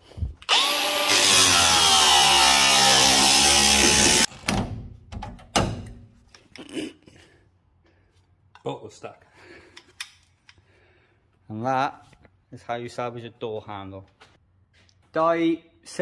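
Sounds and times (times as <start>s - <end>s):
angle grinder cutting metal: 0.5s - 4.3s.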